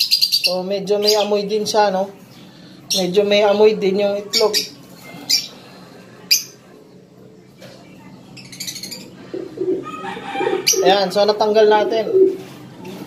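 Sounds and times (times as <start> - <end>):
lovebirds calling: 0.0 - 13.0.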